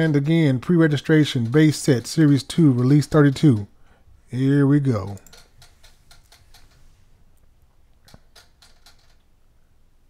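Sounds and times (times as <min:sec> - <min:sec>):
computer keyboard clicking: 0:05.0 - 0:06.7.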